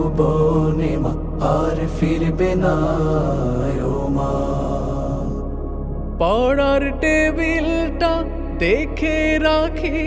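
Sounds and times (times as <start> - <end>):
person singing a slow lament: 0.0 - 5.4
steady low drone: 0.0 - 10.0.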